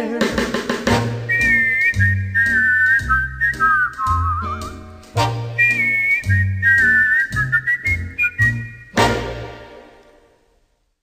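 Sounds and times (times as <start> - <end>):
dance-band music: 0.0 - 10.0
whistled melody with vibrato: 1.0 - 9.6.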